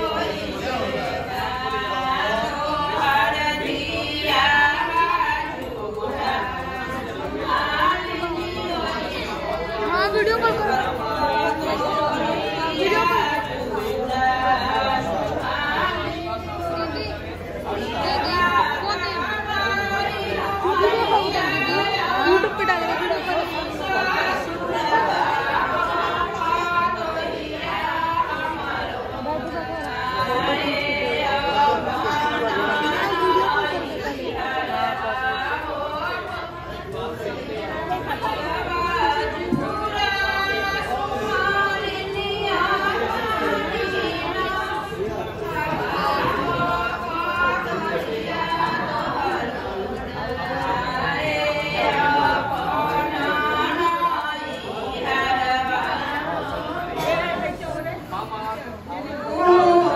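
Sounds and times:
people chattering: 0.0s - 59.9s.

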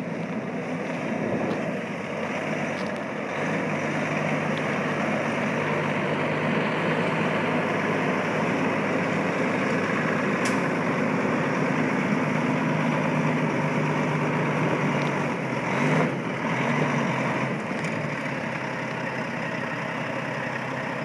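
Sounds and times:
truck diesel engine running: 0.0s - 21.0s.

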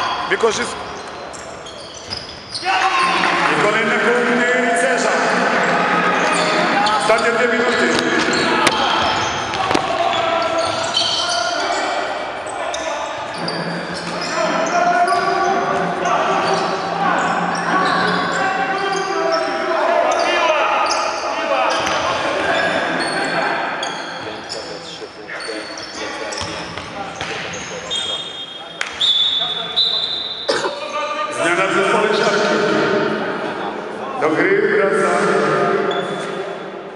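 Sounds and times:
players calling out: 0.0s - 36.6s
ball bouncing on hardwood court: 7.9s - 10.0s, 26.4s - 27.5s.

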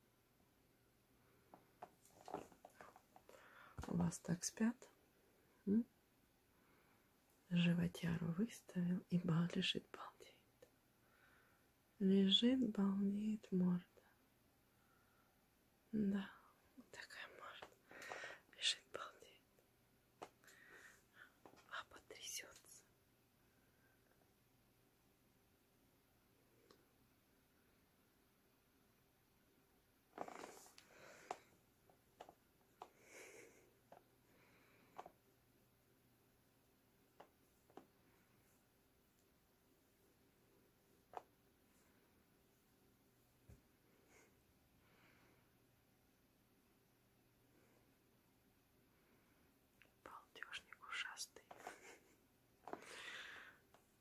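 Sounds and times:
soft whisper: 1.2s - 10.8s, 12.0s - 14.2s, 15.9s - 24.3s, 30.2s - 35.9s, 37.0s - 45.6s, 48.9s - 54.0s
person whispering: 3.8s - 5.0s, 5.6s - 5.9s, 7.5s - 10.6s, 12.0s - 14.1s, 15.9s - 19.5s, 21.1s - 22.9s, 49.8s - 52.1s.

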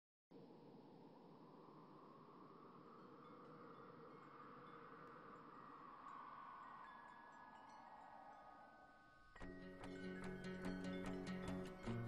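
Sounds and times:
faint steady tones: 0.3s - 12.0s.

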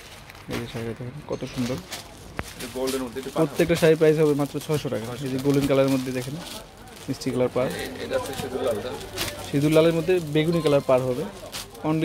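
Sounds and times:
cloth rustle: 0.0s - 12.0s.

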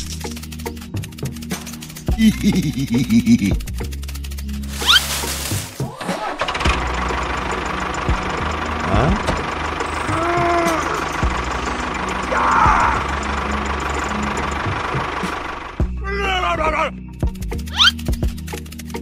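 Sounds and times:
background music: 0.0s - 19.0s
tractor engine running: 0.0s - 19.0s.

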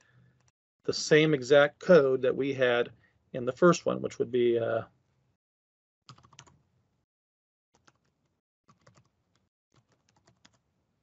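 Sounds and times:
faint keyboard typing: 0.2s - 0.6s, 6.1s - 6.6s, 7.8s - 10.7s.

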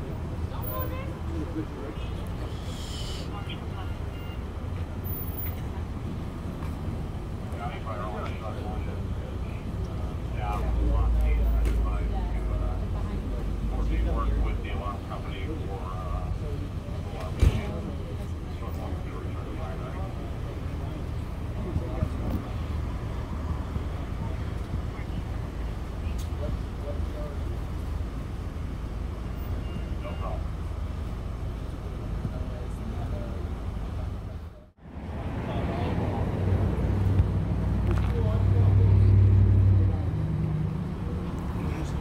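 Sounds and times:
engines idling low rumble: 0.0s - 42.0s
faint voices talking: 0.0s - 42.0s.

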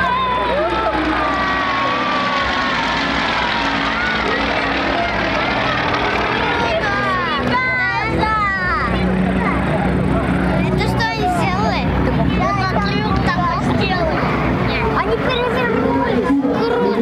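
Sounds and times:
propeller planes droning overhead: 0.0s - 17.0s.

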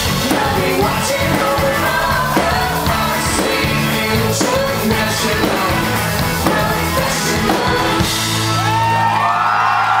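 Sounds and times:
crowd whooping: 7.8s - 10.0s.

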